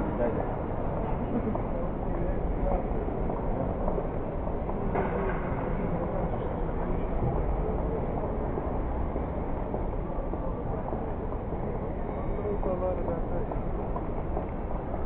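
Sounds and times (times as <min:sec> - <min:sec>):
indoor hall background noise: 0:00.0 - 0:15.0.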